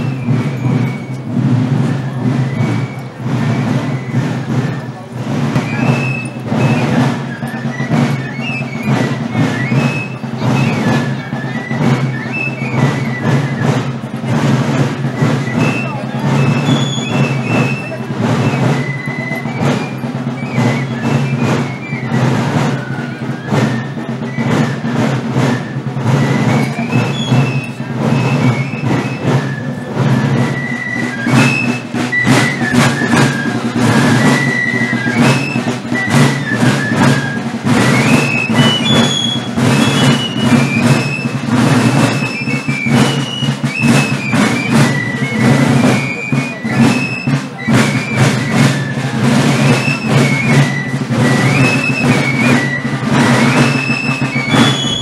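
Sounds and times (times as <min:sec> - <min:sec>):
drumbeats: 0:00.0 - 0:55.0
marching brass band: 0:00.0 - 0:55.0.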